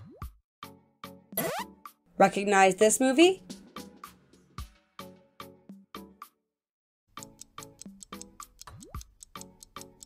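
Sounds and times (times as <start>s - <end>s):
background music with steady beat: 3.3s - 6.1s, 7.1s - 10.0s.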